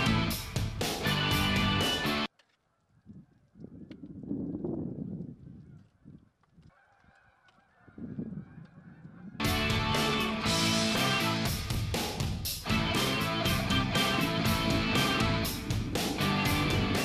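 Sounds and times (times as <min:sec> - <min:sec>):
guitar music: 0:00.0 - 0:02.3, 0:09.4 - 0:12.0, 0:12.6 - 0:17.0
geese honking: 0:06.7 - 0:11.5.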